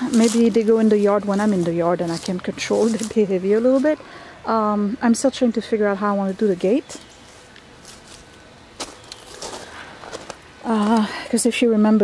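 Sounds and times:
footsteps crunching on gravel: 0.0s - 4.0s, 7.1s - 11.0s.

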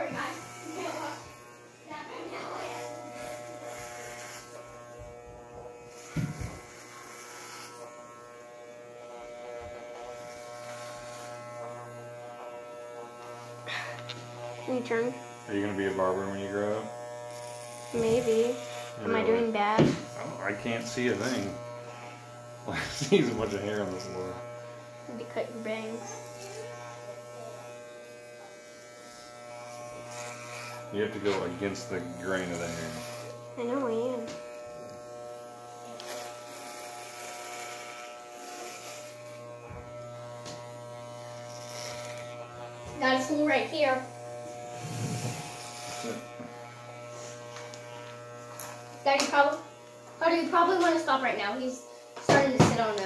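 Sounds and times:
electric hair clippers buzzing: 0.0s - 53.0s.

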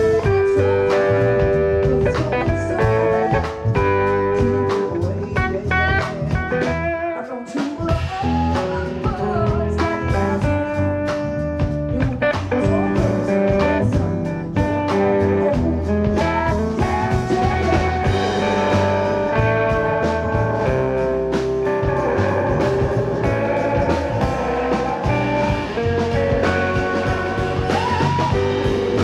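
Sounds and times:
double bass: 0.0s - 7.1s, 7.8s - 29.0s
electric guitar melody: 0.0s - 29.0s
drum kit hits: 7.9s - 29.0s.

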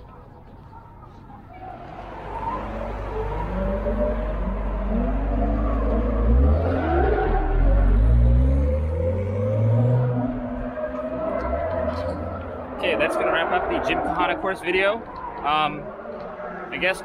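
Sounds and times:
car engine revving: 1.7s - 16.8s
deep exhaust rumble: 1.8s - 12.9s.

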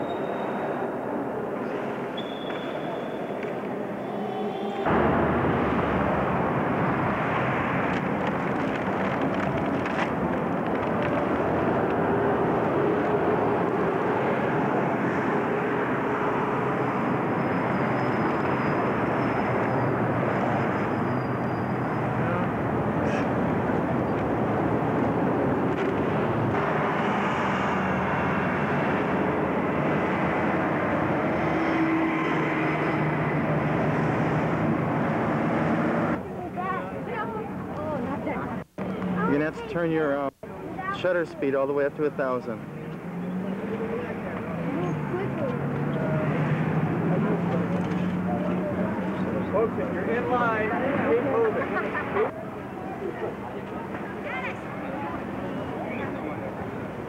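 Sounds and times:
city street traffic: 0.0s - 57.0s.

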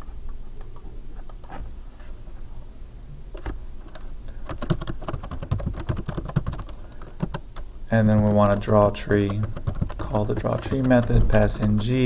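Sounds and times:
keyboard typing: 4.4s - 7.4s, 8.1s - 12.0s.

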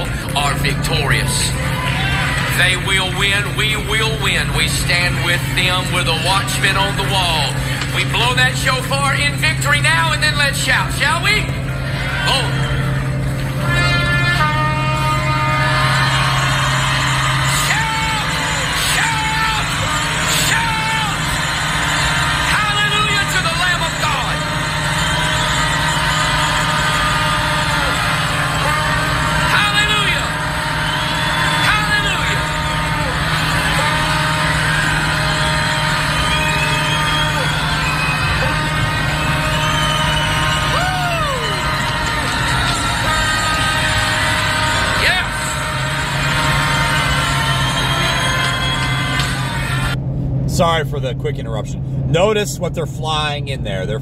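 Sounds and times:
congregation shouting and cheering: 0.0s - 50.0s
shofar blasts: 12.4s - 50.0s.

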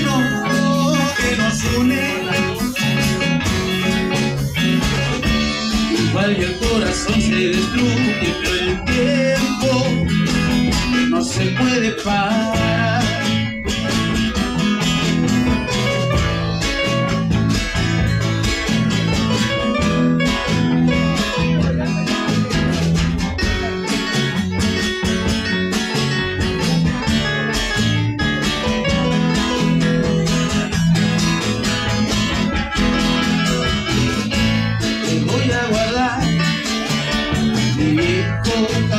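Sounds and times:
live band playing: 0.0s - 38.9s.

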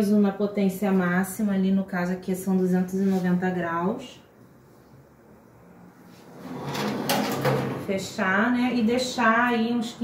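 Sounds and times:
hinges scraping and knocking: 6.4s - 7.9s
oven door closing: 6.4s - 7.9s.

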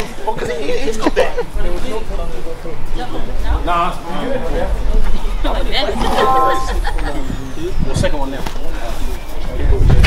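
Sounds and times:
crowd voices: 3.3s - 7.4s
short horn tone: 6.1s - 6.9s.

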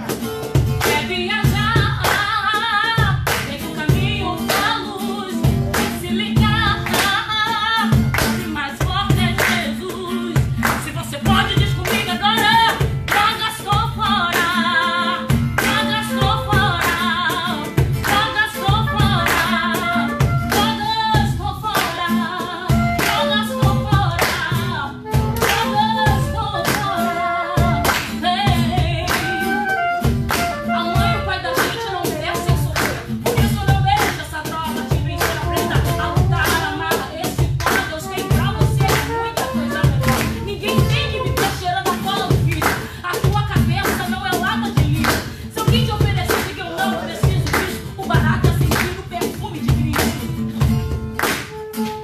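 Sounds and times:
acoustic guitar: 0.0s - 52.0s
cajon beat: 0.0s - 52.0s
handclaps: 0.0s - 52.0s
person singing: 8.6s - 43.8s, 45.6s - 49.9s.

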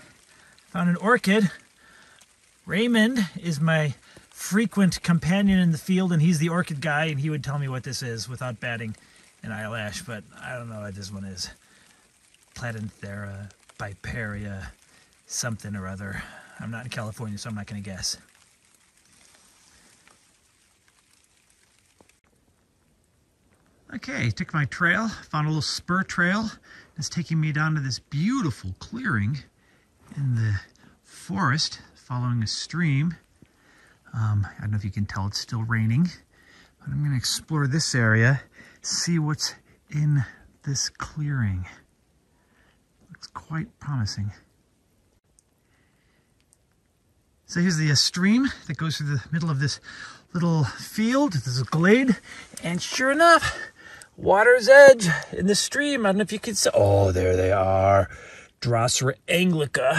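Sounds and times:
faint background hiss: 0.0s - 59.9s
light rain: 0.0s - 59.9s
tiny ticks: 45.3s - 45.6s, 46.4s - 47.0s.

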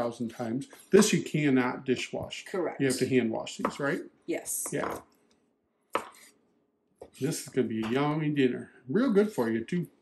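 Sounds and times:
knife chopping on cutting board: 5.9s - 6.3s.

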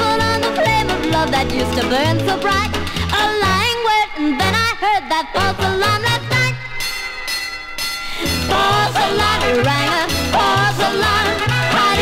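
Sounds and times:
rock and roll band with orchestra: 0.0s - 3.7s, 5.5s - 12.0s.

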